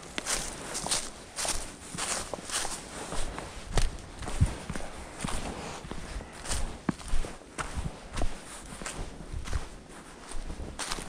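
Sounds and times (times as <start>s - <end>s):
footsteps on leafy rocky trail: 0.0s - 11.0s.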